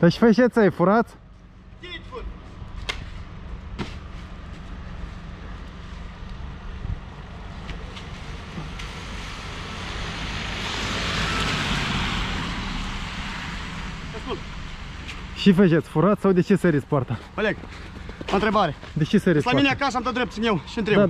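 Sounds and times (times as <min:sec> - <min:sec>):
low traffic rumble: 0:00.0 - 0:21.0.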